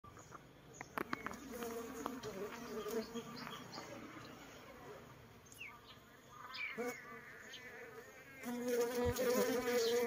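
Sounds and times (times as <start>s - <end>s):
honeybee swarm buzzing: 1.3s - 3.8s, 6.7s - 10.0s.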